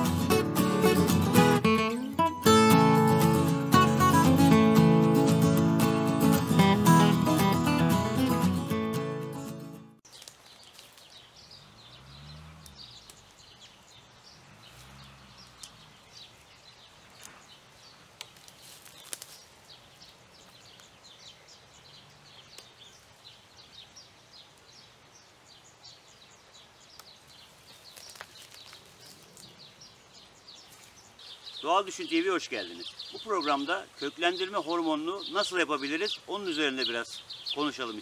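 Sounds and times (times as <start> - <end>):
branches snapping: 10.0 - 11.3, 12.6 - 13.5, 17.1 - 17.5, 18.1 - 19.8, 26.9 - 29.6
small bird chirping: 10.0 - 38.0.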